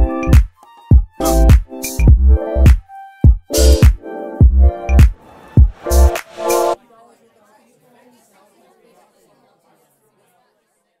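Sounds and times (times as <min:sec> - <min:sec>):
faint chatter of voices: 0:06.8 - 0:11.0.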